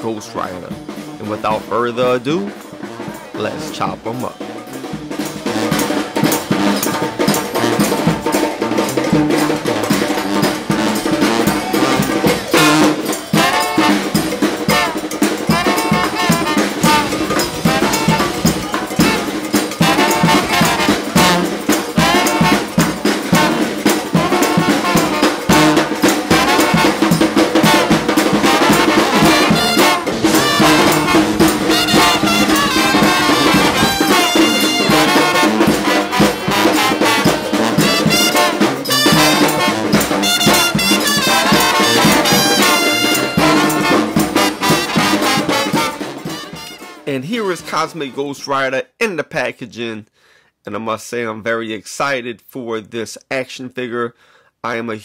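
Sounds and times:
brass music over percussion: 0.0s - 48.5s.

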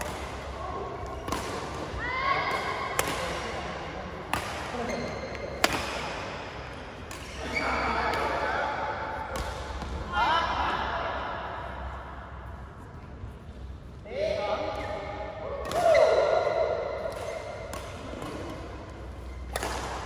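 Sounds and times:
racket striking shuttlecock: 2.5s - 3.4s, 5.6s - 6.2s, 17.0s - 18.7s, 19.3s - 20.0s.

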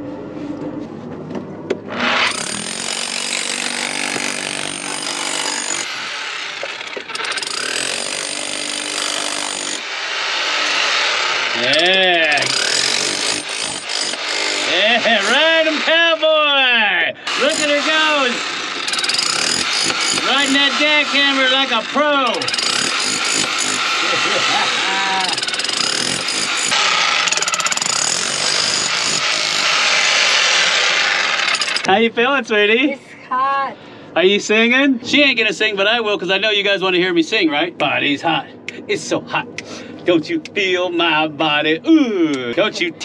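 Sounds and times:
jackhammer chipping rock: 2.0s - 15.9s, 17.3s - 31.9s.

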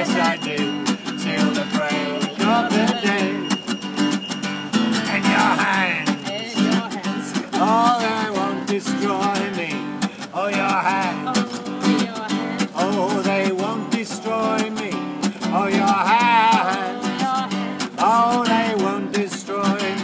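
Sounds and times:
man singing: 0.0s - 3.6s, 5.0s - 20.0s
acoustic guitar strumming: 0.0s - 20.0s.

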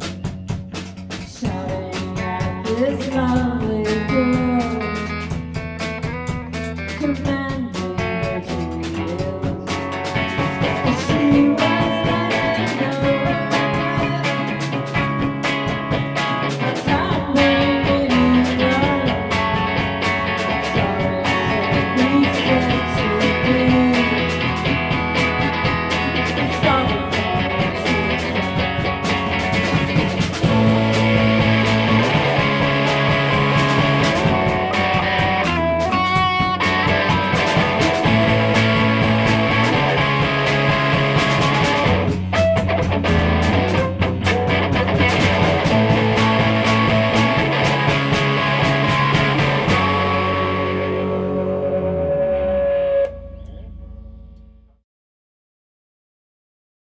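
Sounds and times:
drums: 0.0s - 54.6s
electric guitar: 0.0s - 54.6s
bass line: 0.0s - 54.8s.

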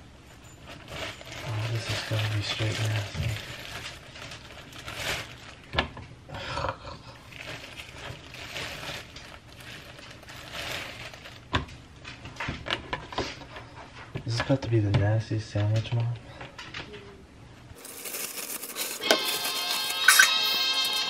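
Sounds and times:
plastic bag crinkling: 0.5s - 5.8s, 7.2s - 11.6s, 17.8s - 20.5s.

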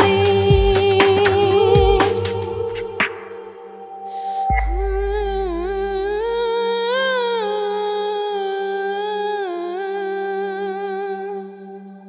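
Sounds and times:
woman singing long wordless note: 0.0s - 12.0s
low backing drone: 1.3s - 6.7s.

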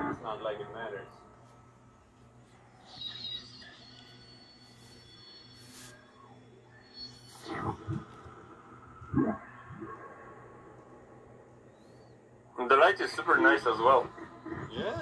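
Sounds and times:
faint high electronic tones: 0.0s - 15.0s
steady low hum: 0.0s - 15.0s.

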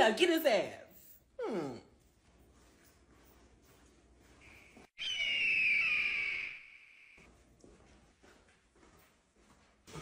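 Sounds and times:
high-pitched descending squeal: 5.0s - 7.2s.

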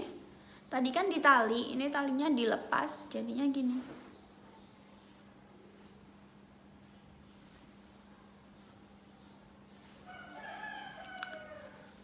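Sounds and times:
faint rooster crow: 9.8s - 12.0s.

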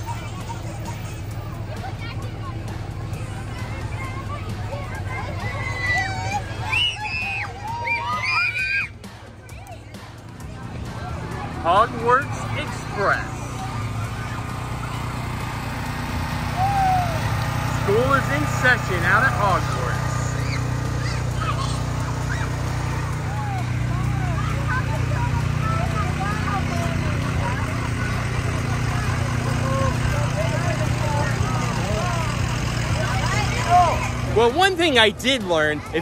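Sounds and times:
crowd calling out and chattering: 0.0s - 36.0s
vehicle engines humming: 0.0s - 36.0s.

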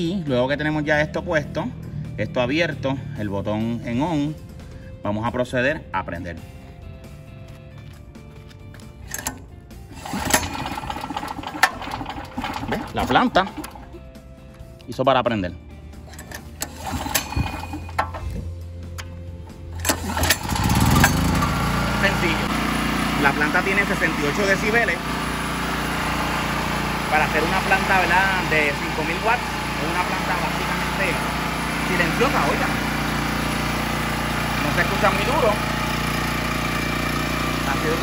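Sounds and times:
generator engine running: 0.0s - 15.0s, 15.6s - 38.0s.

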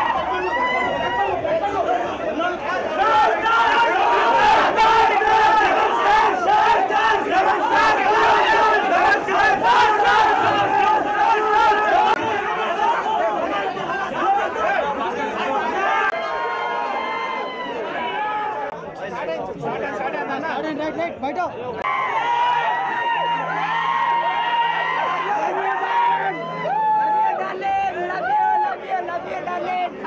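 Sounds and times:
crowd shouting: 0.0s - 18.9s, 21.8s - 30.0s.

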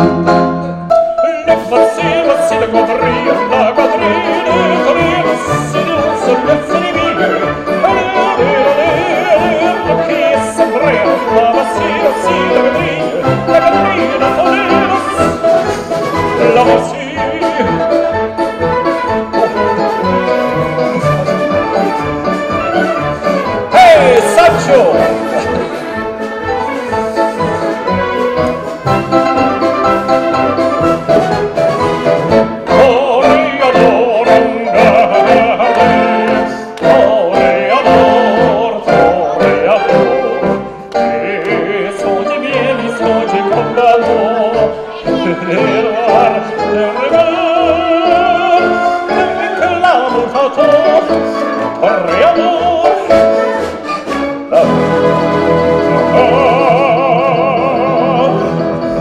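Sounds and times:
person singing with vibrato: 0.0s - 30.8s, 31.7s - 59.0s
wind band music: 0.0s - 59.0s.

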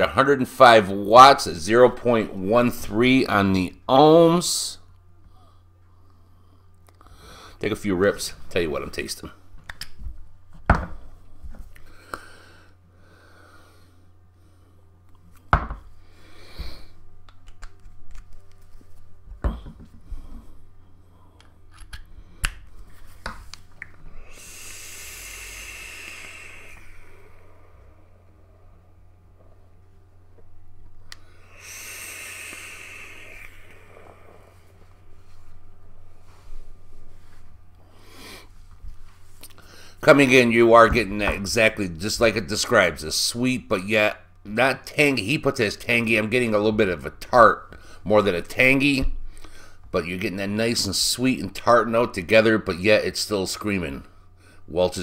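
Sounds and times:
steady low hum: 0.0s - 55.0s
vape hiss of air and coil: 24.1s - 28.0s, 31.2s - 34.9s.

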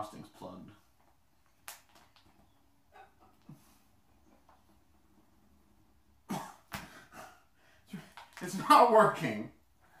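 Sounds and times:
man coughing: 6.2s - 8.1s.

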